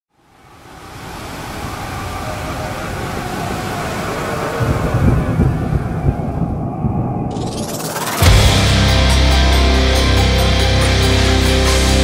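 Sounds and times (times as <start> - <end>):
steady rushing noise: 0.4 - 12.0
deep rumbling: 3.0 - 11.6.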